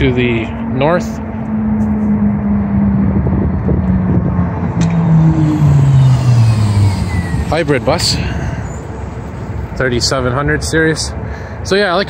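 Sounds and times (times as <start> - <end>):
bus driving past: 1.4 - 10.4
faint high whine: 4.4 - 10.5.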